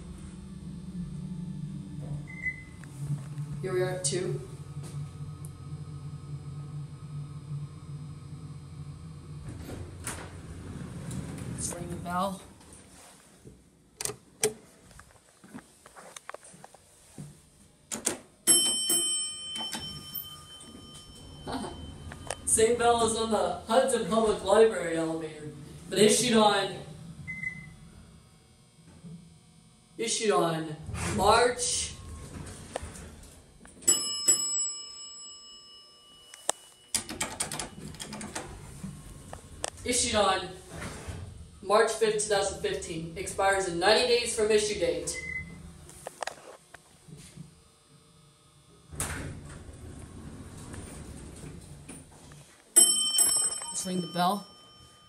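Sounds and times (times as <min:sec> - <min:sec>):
elevator alarm bell ringing: 0:18.4 - 0:24.8, 0:33.8 - 0:40.3, 0:52.8 - 0:55.0.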